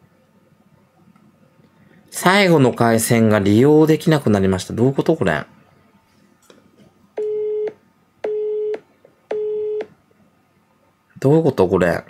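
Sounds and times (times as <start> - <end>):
telephone busy tone beep: 7.2 - 9.9.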